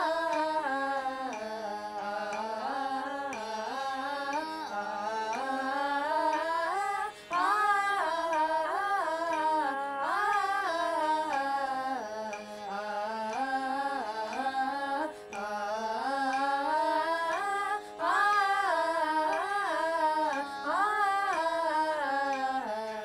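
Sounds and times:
women singing vocal exercise: 0:00.0 - 0:23.0.

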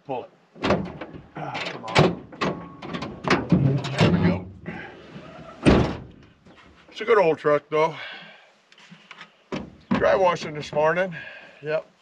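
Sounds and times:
tailgate banging open: 0:00.6 - 0:04.6, 0:05.6 - 0:06.2
tailgate knocks and clanks: 0:00.6 - 0:04.6, 0:05.6 - 0:06.2.

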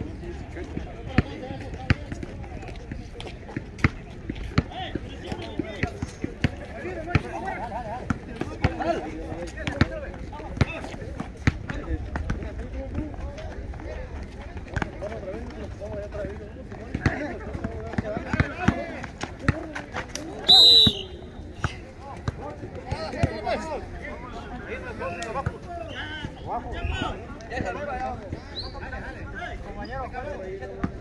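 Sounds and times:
basketball bouncing on asphalt: 0:01.1 - 0:02.8, 0:03.5 - 0:07.4, 0:09.6 - 0:13.8, 0:16.0 - 0:19.8
people calling out: 0:20.4 - 0:21.6.

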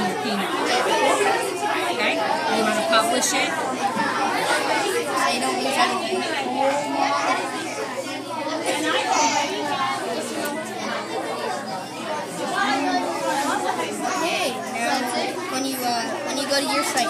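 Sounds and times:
children chattering: 0:00.0 - 0:17.0.

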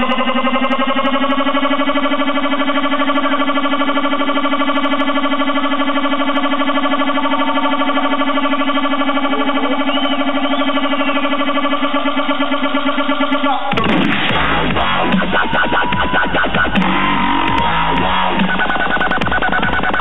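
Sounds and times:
buzzing synthesizer drone: 0:00.0 - 0:20.0.

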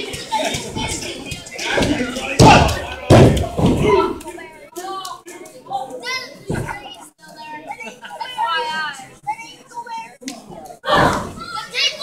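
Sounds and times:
crowd voices: 0:00.0 - 0:12.0
heavy thuds on wrestling mat: 0:02.4 - 0:04.0
children shouting: 0:10.8 - 0:12.0.

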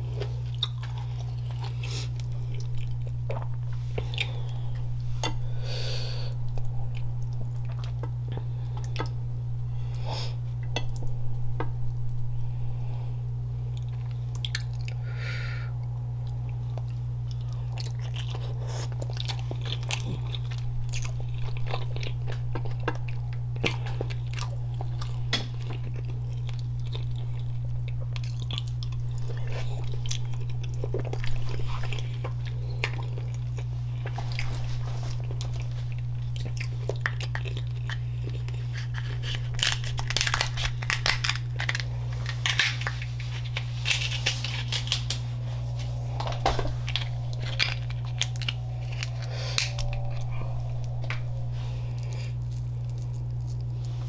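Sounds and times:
steady low hum: 0:00.0 - 0:54.0
chewing and biting: 0:00.1 - 0:04.5, 0:13.7 - 0:15.0, 0:16.2 - 0:45.2
crab shell clicks and crackles: 0:38.8 - 0:42.9.

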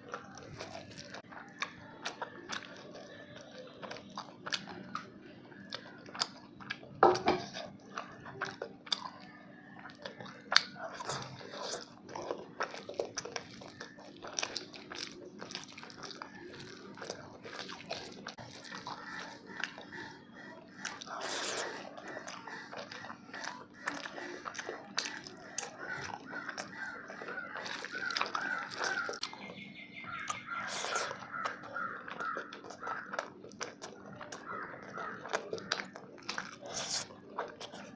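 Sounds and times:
chewing and lip smacking: 0:00.0 - 0:37.9
crow cawing: 0:25.6 - 0:29.2, 0:30.1 - 0:33.2.

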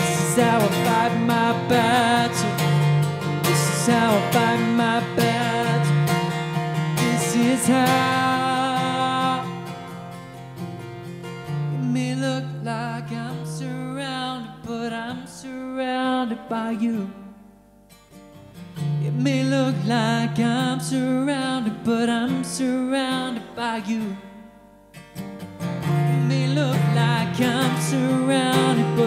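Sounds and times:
man singing worship song: 0:00.0 - 0:06.1, 0:07.0 - 0:09.6, 0:11.8 - 0:17.3, 0:19.0 - 0:24.2, 0:26.1 - 0:29.0
acoustic guitar strumming: 0:00.0 - 0:29.0.

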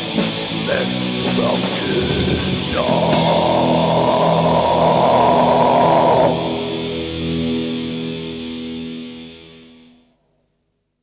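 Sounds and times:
distorted black metal band playing: 0:00.0 - 0:09.8.

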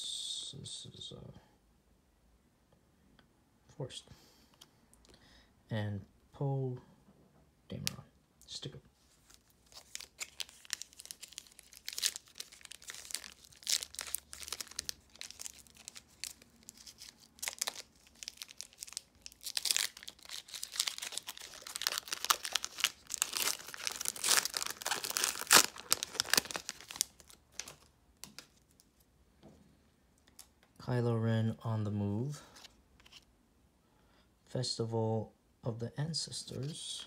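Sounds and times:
foil wrapper crinkling and tearing: 0:09.2 - 0:28.4.

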